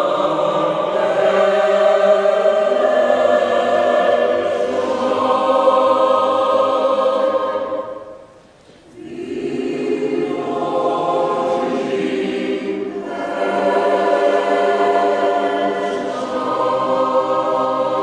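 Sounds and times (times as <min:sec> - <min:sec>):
mixed choir singing: 0:00.0 - 0:18.0.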